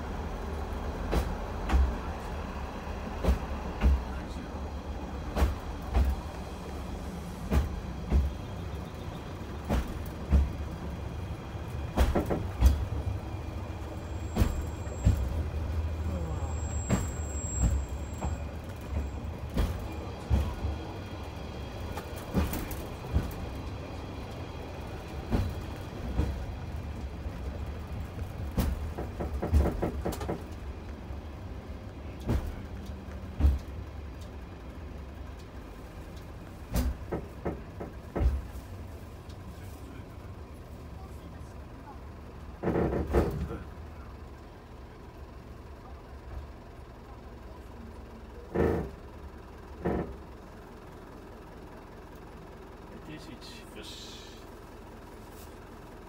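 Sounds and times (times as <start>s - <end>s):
track knocks and clatter: 0.0s - 53.1s
brake squeal on rails: 5.4s - 26.5s, 48.4s - 50.4s
engine drone: 48.0s - 55.4s.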